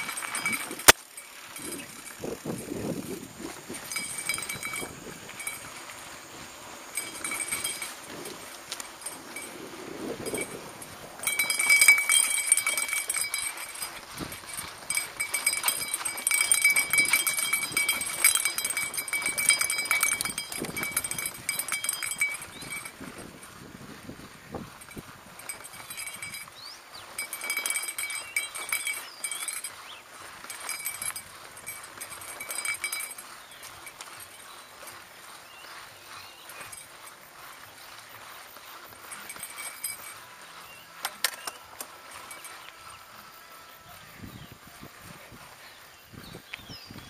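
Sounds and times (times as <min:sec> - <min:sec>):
mountain bike rattling: 0:00.0 - 0:47.0
tyre crunch on sandy soil: 0:00.0 - 0:47.0.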